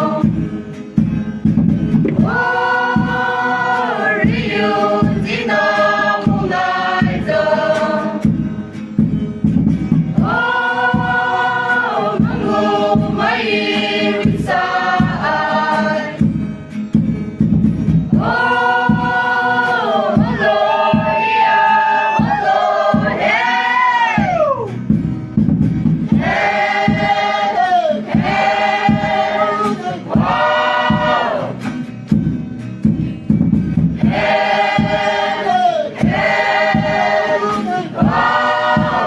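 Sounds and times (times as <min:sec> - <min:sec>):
choir singing: 0:00.0 - 0:00.3, 0:02.1 - 0:08.3, 0:10.1 - 0:16.2, 0:18.1 - 0:24.4, 0:26.1 - 0:31.6, 0:34.0 - 0:39.0
steady low beat: 0:01.5 - 0:05.7, 0:25.5 - 0:31.4, 0:38.0 - 0:39.0.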